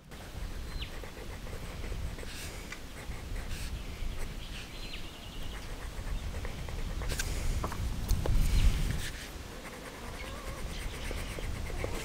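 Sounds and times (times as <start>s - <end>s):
pencil scratching on paper: 0.5s - 4.3s, 5.4s - 7.4s, 9.0s - 12.0s
bird call and trill: 10.0s - 12.0s.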